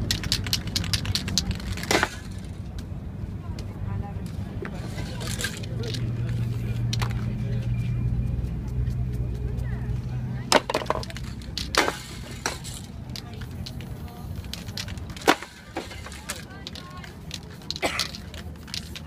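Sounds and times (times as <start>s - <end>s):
sharp clicks and knocks: 0.0s - 2.9s, 10.5s - 19.0s
street noise hum: 0.0s - 19.0s.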